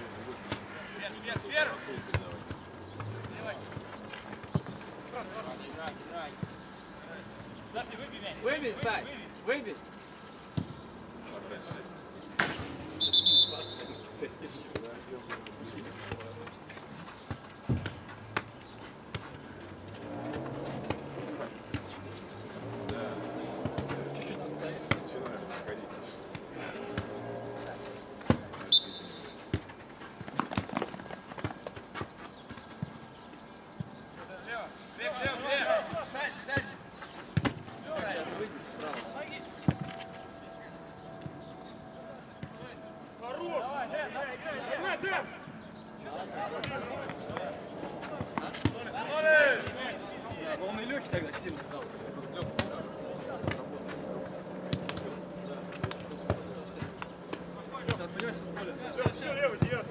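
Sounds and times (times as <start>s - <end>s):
referee's whistle blast: 13.0s - 14.0s, 28.7s - 29.4s
players shouting: 41.9s - 45.5s, 46.1s - 51.5s.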